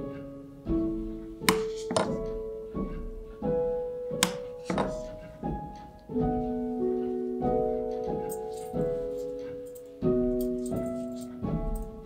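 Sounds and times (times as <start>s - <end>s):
soft plucked instrumental music: 0.0s - 12.0s
soap cutter frame thunk on wood: 4.2s - 5.0s.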